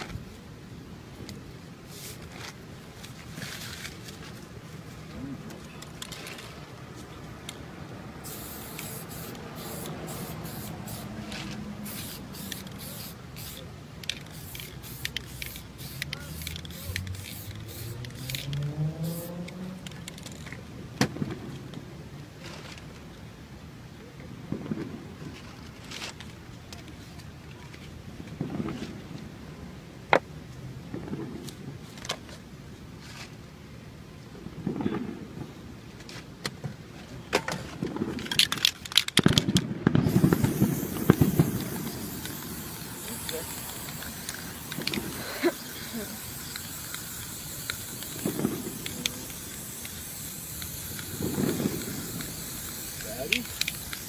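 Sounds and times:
aerosol spray can hissing: 8.2s - 19.4s, 40.0s - 54.0s.

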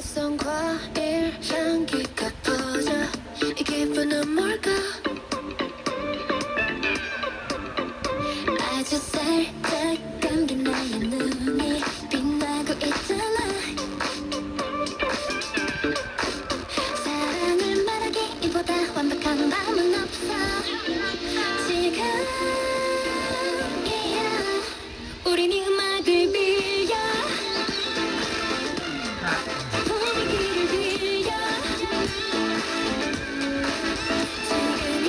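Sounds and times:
song on portable radio: 0.0s - 35.0s.

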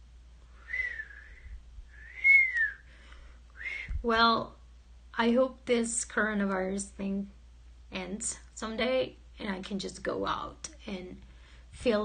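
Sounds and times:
person whistling gliding notes: 0.6s - 2.9s.

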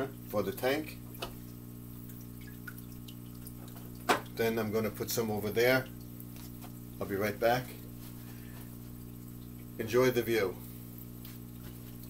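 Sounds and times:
aquarium hum: 0.0s - 12.0s
water trickling: 0.0s - 12.0s.

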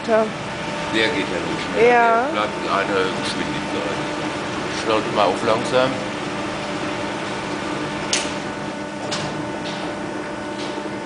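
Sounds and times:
sawmill machinery hum: 0.0s - 11.0s.

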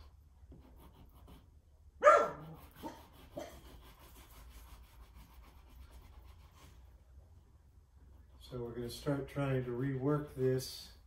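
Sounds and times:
dog barking or yelping: 2.0s - 3.6s
oil stick scratching on paper: 2.4s - 6.8s.

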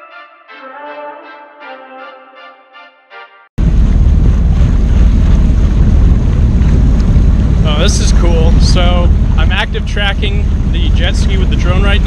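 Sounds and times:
background music: 0.0s - 3.5s
jet ski running on water: 3.6s - 12.0s
wind buffeting microphone: 3.6s - 12.0s.

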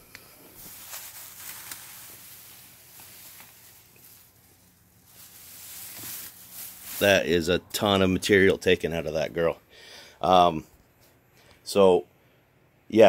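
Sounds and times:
leaves rustling: 0.5s - 7.5s.

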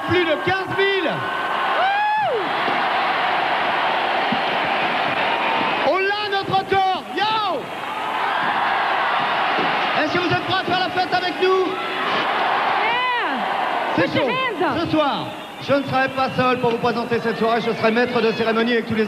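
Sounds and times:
crowd applauding and cheering: 0.0s - 19.0s.

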